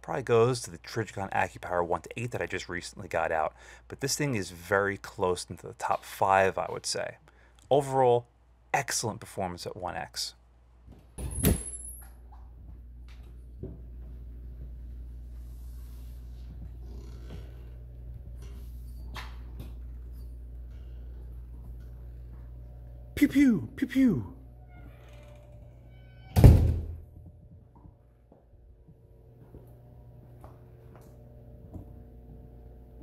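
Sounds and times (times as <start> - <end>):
steady low hum: 10.4 - 33.0
door squeak: 24.6 - 27.0
door clattering open: 26.2 - 27.0.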